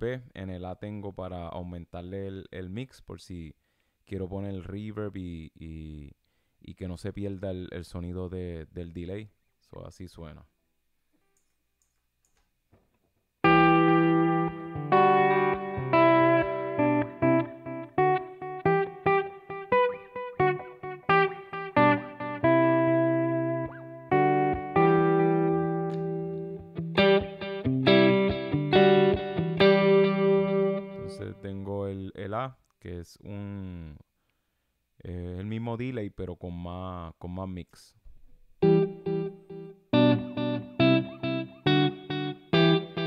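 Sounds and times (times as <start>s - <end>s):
electric guitar with delay: 13.4s - 31.4s, 38.6s - 43.0s.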